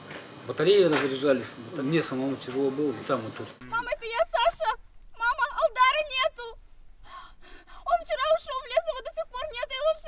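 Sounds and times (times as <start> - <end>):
woman speaking in distressed voice: 3.7 - 6.6, 7.8 - 10.0.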